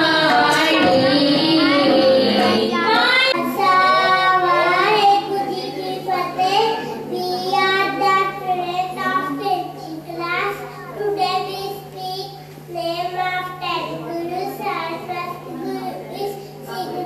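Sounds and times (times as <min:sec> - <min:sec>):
singing music: 0:00.0 - 0:08.1
child singing into microphone: 0:00.0 - 0:17.0.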